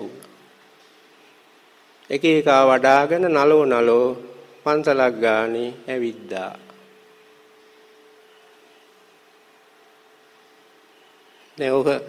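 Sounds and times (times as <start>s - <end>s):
faint steady hum: 0.0s - 12.0s
steady hiss: 0.0s - 12.0s.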